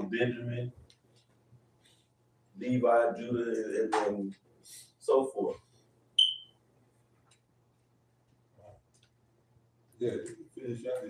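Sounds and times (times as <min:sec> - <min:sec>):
faint steady hum: 0:00.0 - 0:11.0
high-pitched electronic beep: 0:06.2 - 0:06.5.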